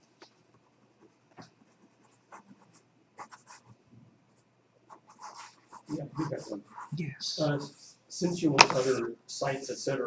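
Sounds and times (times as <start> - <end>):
pen scratching on paper: 1.3 - 3.8, 4.9 - 7.8, 8.6 - 9.0.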